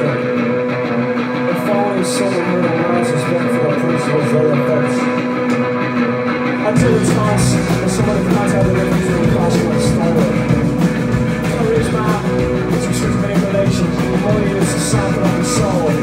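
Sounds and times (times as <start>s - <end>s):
bass guitar: 0.0s - 16.0s
distorted electric guitars: 0.0s - 16.0s
man singing into microphone: 6.6s - 10.8s, 11.4s - 16.0s
drums with cymbal crashes: 6.7s - 16.0s.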